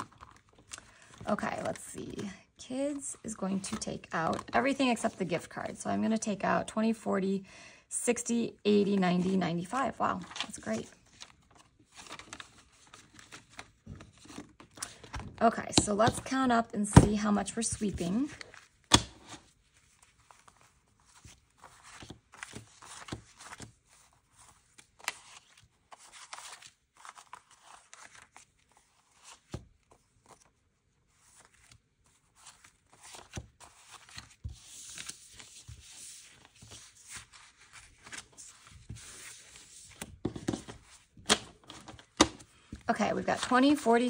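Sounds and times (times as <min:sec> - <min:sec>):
banknotes rustling and flicking: 0:00.0 - 0:06.3, 0:08.2 - 0:44.0
paper stack slaps and taps: 0:13.2 - 0:19.4, 0:38.8 - 0:42.8.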